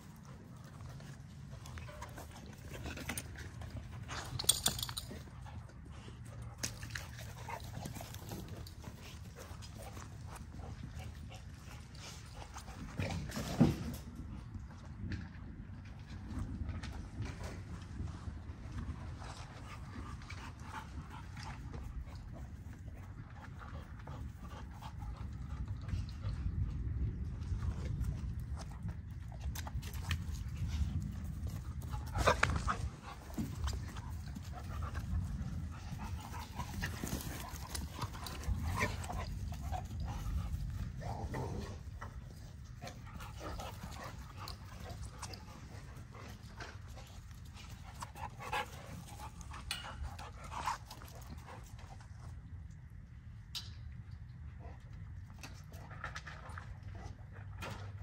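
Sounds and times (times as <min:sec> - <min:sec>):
dogs panting: 0:00.0 - 0:14.5, 0:17.2 - 0:52.5
steady low rumble: 0:14.0 - 0:55.5.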